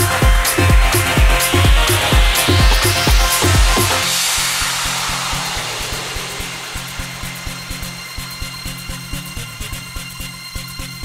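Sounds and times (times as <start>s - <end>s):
techno dance music: 0.0s - 8.7s.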